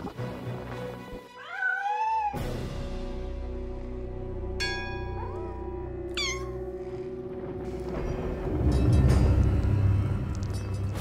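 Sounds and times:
background music: 0.0 - 11.0
deep rumble: 3.7 - 11.0
kitten meowing: 5.2 - 6.6.

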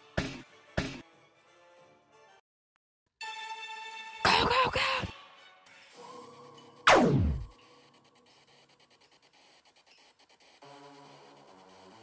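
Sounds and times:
blaster shot sound effect: 6.9 - 7.5.

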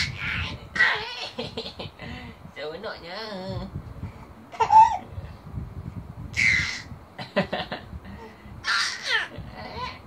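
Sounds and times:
baby squealing: 0.0 - 1.4, 6.4 - 6.9, 8.6 - 10.0.

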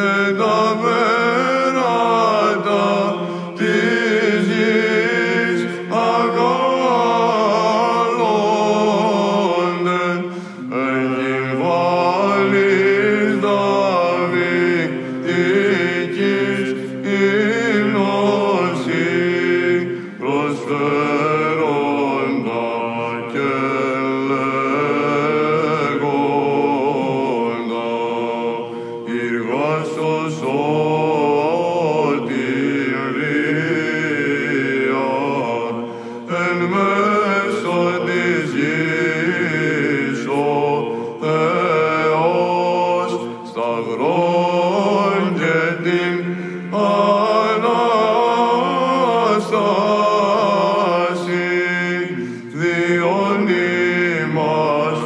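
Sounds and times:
held vocal drone: 0.0 - 55.0
monks chanting: 0.0 - 55.0
breaths: 3.2 - 3.6, 10.2 - 10.7, 14.9 - 15.3, 19.9 - 20.2, 28.6 - 29.1, 35.8 - 36.3, 40.8 - 41.2, 46.2 - 46.7, 52.1 - 52.6.

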